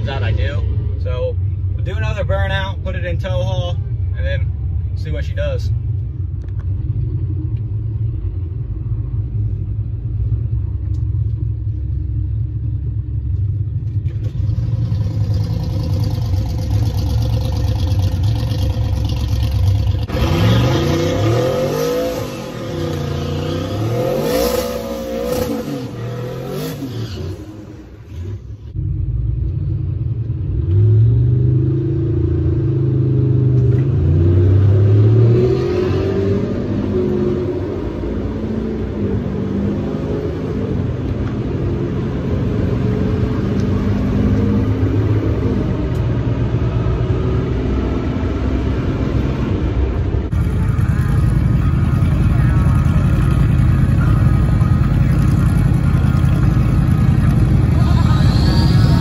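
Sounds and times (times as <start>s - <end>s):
diesel engine revving: 13.9s - 59.0s.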